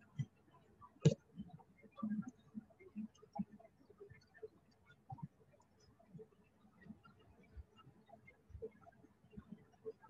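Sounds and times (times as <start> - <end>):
light clicks and soft knocks: 0.0 - 10.0.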